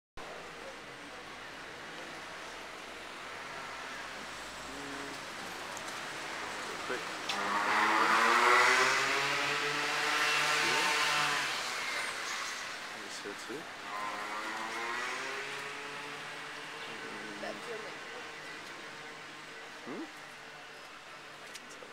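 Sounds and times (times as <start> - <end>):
car driving past on wet street: 4.2 - 13.0.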